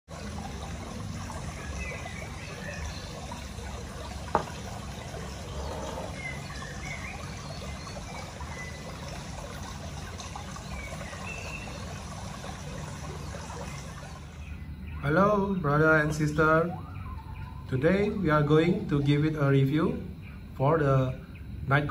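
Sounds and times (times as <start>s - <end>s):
water trickling: 0.1s - 21.9s
faint high chirps: 14.2s - 18.4s.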